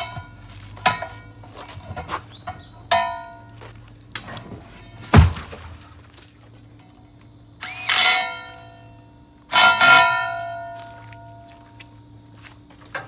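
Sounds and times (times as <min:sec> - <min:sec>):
steel wheel rim clanging: 0:00.0 - 0:05.0, 0:09.5 - 0:11.4.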